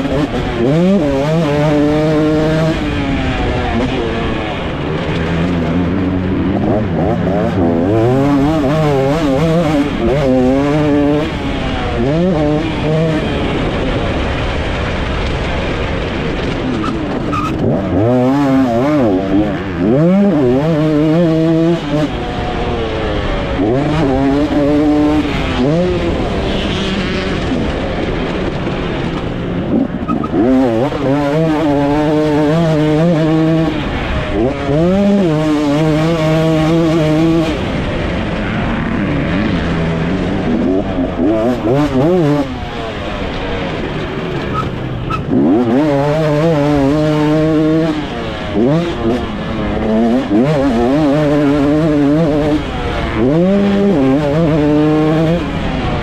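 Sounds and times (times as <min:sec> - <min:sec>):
motocross engine revving: 0:00.0 - 0:56.0.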